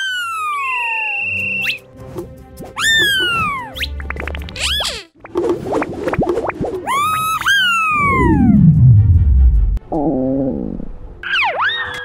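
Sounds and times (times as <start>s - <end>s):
cartoon whistle glides: 0.8s - 1.8s
deep falling rumble: 8.0s - 9.8s.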